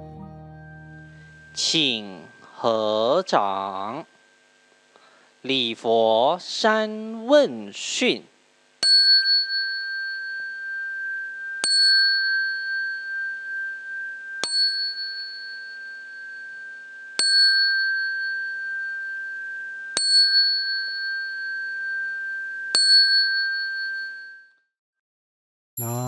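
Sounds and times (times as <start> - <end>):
bowl bell struck and ringing: 0.5 - 4.0, 8.8 - 24.5.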